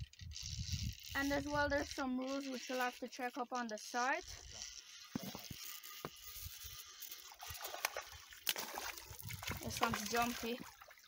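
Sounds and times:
fish thrashing and splashing water: 7.2 - 11.0.

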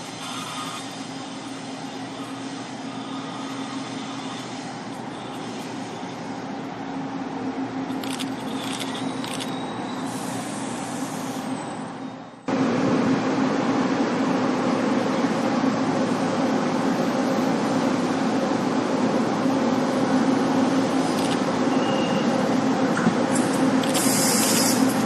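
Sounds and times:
diesel train engine drone: 0.0 - 25.0.

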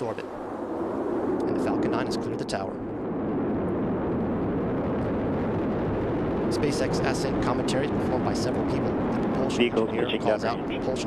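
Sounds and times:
rocket engines deep rumble: 0.0 - 11.0.

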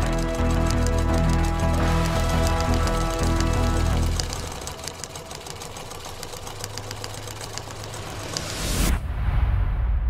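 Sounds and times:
sewing machine stitching: 0.0 - 8.9
background music: 0.0 - 9.2.

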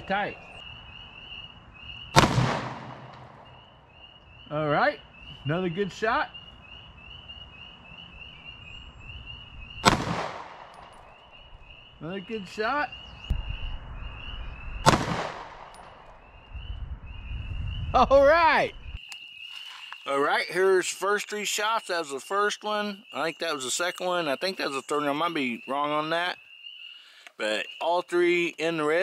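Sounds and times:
pistol shot with echo: 2.1 - 3.7, 9.8 - 11.2, 14.8 - 16.1.

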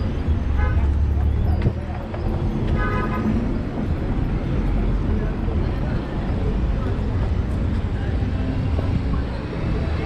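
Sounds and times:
bus passing: 0.0 - 10.0
passing cars rumbling: 0.0 - 10.0.

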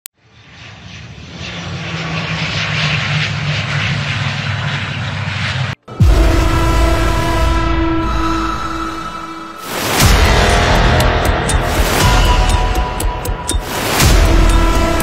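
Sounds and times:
turboprop engines running: 0.2 - 15.0
music with deep low hit: 5.8 - 15.0.

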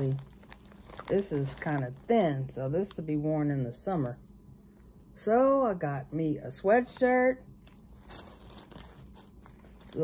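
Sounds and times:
fabric rustling: 7.8 - 10.0.

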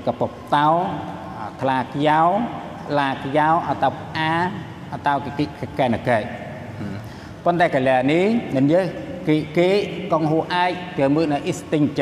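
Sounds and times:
man lecturing: 0.0 - 12.0.

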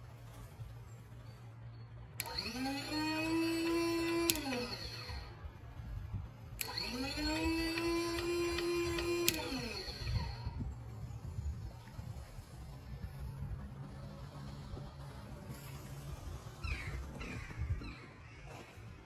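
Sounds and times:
small electric motor whining: 2.2 - 18.8.

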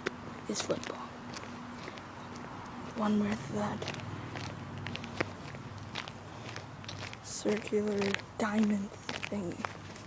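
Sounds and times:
footsteps of person walking: 0.0 - 10.0.

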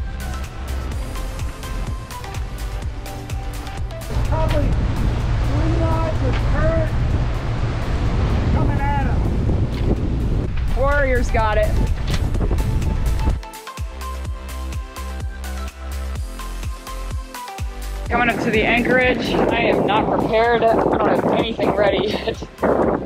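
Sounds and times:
sea water rushing past hull: 0.0 - 13.4, 17.8 - 23.0
wind buffeting microphone: 0.0 - 13.4, 18.1 - 23.0
background music: 0.0 - 23.0.

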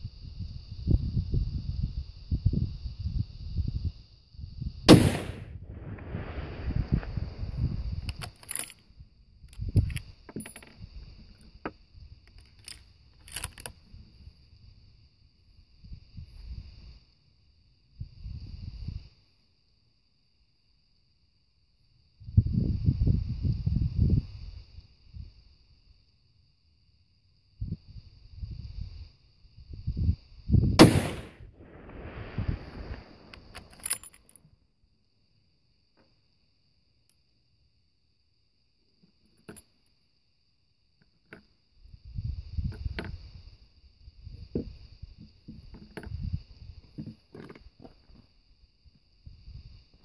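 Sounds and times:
rifle shot: 4.9 - 7.2, 30.8 - 33.7
metallic clicks and knocks of gear: 8.1 - 8.9, 9.5 - 11.5, 12.3 - 13.8, 33.5 - 34.4.

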